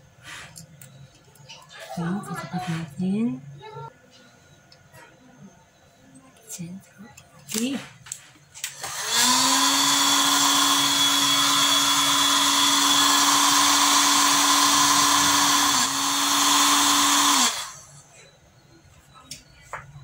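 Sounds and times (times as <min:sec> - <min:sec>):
hot-air blower running: 0:08.6 - 0:18.1.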